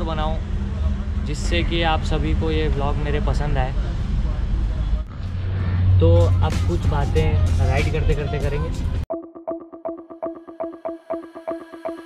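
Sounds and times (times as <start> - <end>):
street traffic: 0.0 - 9.1.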